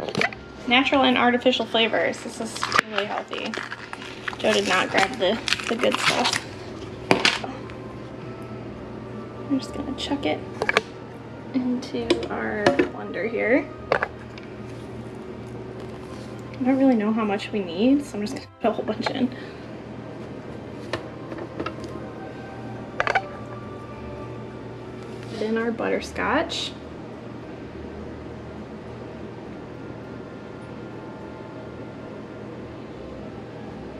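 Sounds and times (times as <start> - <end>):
low steady hum: 0.0 - 33.9
quiet background music: 0.0 - 33.9
plastic film crinkling: 2.2 - 7.8.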